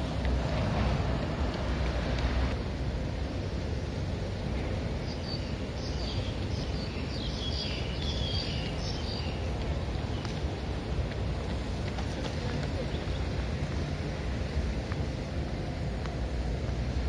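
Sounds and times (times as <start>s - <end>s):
city background: 0.0s - 17.0s
wind rumble: 0.0s - 17.0s
small birds chirping: 5.0s - 10.6s.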